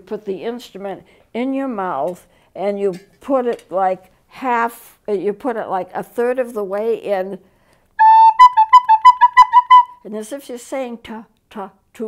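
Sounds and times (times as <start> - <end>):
recorder playing: 8.0 - 10.0.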